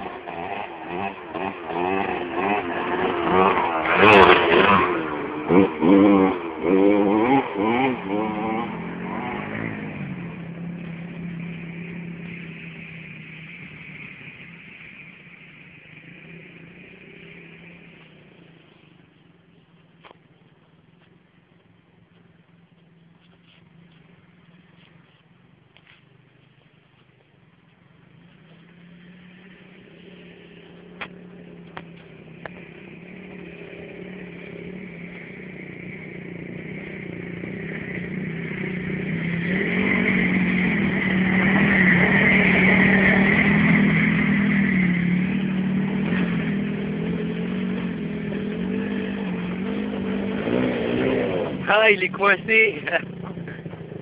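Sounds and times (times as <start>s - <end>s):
single-cylinder engine running: 0.0s - 54.0s.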